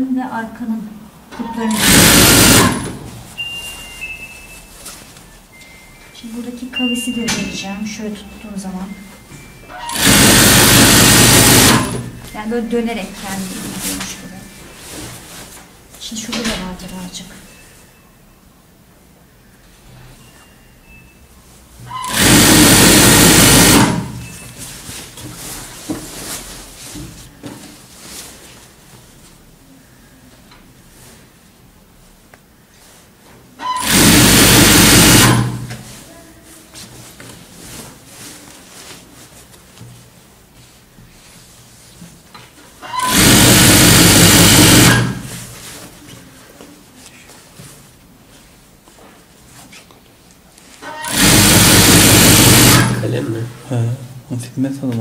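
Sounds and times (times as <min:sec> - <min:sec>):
sewing machine stitching: 0:01.6 - 0:03.1, 0:09.8 - 0:12.2, 0:22.0 - 0:24.3, 0:33.6 - 0:35.7, 0:42.9 - 0:45.3, 0:50.8 - 0:53.1
fabric handling: 0:10.2 - 0:16.3, 0:24.3 - 0:29.7, 0:35.1 - 0:42.8, 0:44.6 - 0:50.8.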